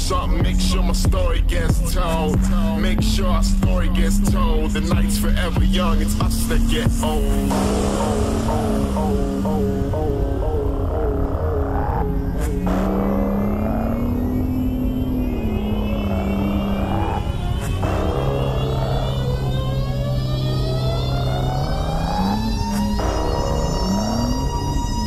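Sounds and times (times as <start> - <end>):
car engine revving hard: 0.0 - 25.0
hip-hop music: 0.0 - 25.0
steady low rumble: 0.0 - 25.0.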